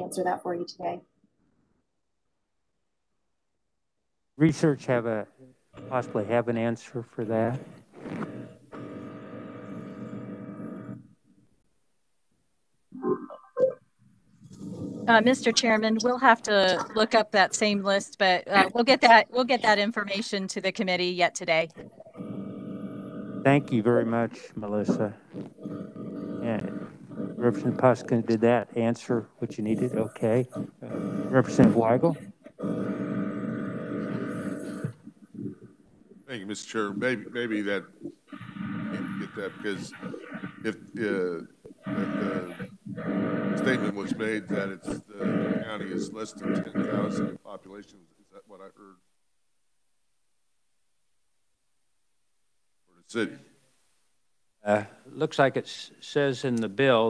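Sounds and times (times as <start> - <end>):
electrical hum: 4.4 - 11.2, 13.0 - 48.8, 53.1 - 53.5, 54.7 - 57.0
low hiss: 23.5 - 25.3, 36.2 - 38.1, 43.6 - 49.1, 52.9 - 57.0.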